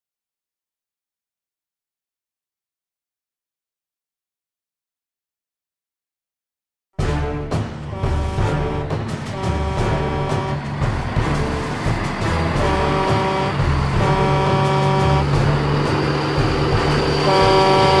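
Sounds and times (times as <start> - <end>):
multi-tone horn blasts: 7.0 - 18.0
truck engine running: 7.5 - 18.0.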